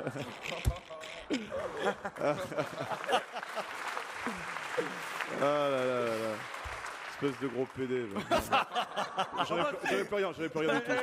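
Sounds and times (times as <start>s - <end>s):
audience applauding: 1.7s - 9.3s.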